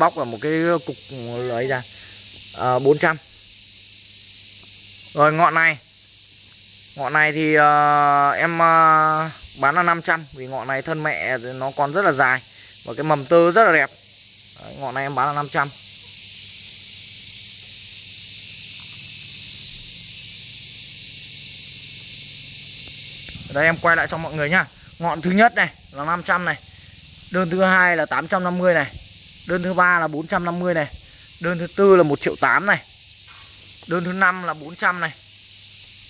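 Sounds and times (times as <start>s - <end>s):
high-pitched hiss: 0.0s - 36.0s.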